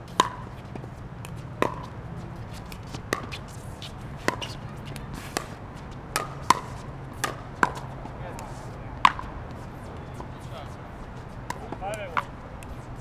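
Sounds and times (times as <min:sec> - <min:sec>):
paddles hitting plastic ball: 0:01.2 - 0:01.9, 0:02.6 - 0:09.3.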